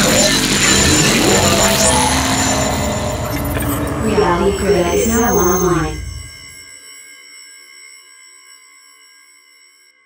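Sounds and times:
synthesized ringing chord: 0.7 - 6.7.

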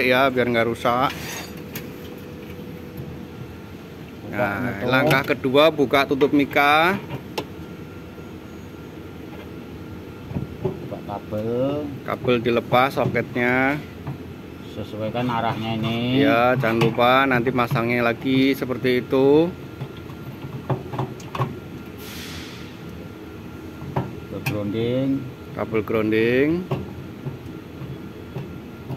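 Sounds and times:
scraping rustle: 1.0 - 2.0.

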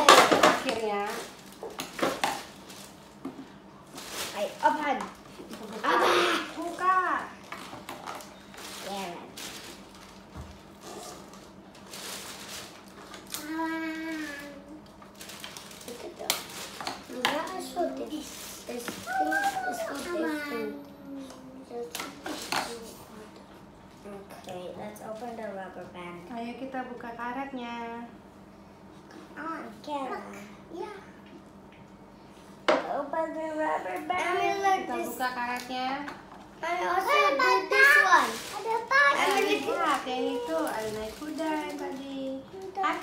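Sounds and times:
plastic packaging being handled: 0.0 - 3.2, 3.8 - 20.5, 36.9 - 43.0.

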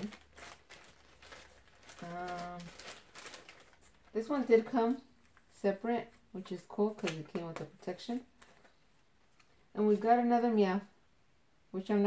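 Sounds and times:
packaging rustling and crinkling: 0.0 - 5.5, 6.9 - 10.1.

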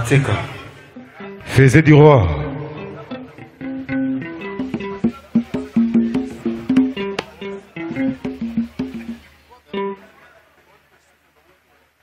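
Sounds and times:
electric guitar picking notes: 0.9 - 10.1.

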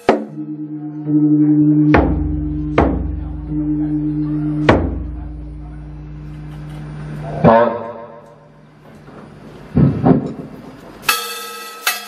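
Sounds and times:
ringing percussion strokes: 0.0 - 7.3, 11.0 - 12.0.

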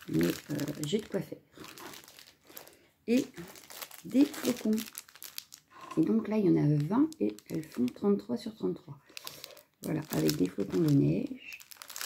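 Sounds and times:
plastic film crinkling: 0.0 - 8.2, 9.1 - 12.0.

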